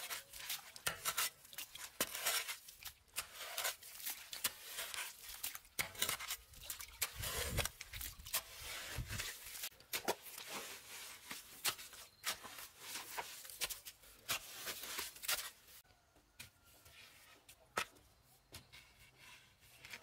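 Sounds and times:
spade scraping gravelly mud: 0.0s - 15.8s, 18.7s - 20.0s.

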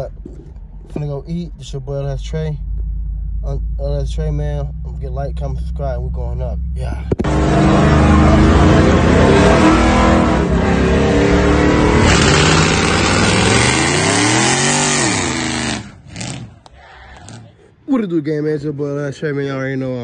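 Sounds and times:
car engine revving high: 3.5s - 16.6s.

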